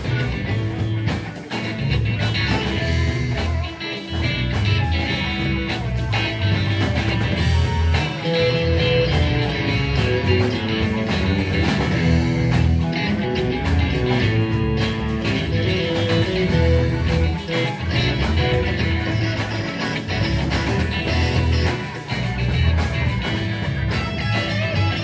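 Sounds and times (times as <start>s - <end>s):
bass guitar: 0.0s - 25.0s
electric guitar lines: 0.0s - 25.0s
steady drum beat: 0.0s - 25.0s.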